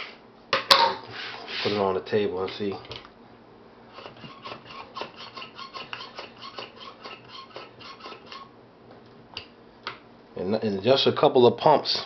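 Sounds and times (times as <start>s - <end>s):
vacuum pump plunger rasps: 3.9s - 8.5s.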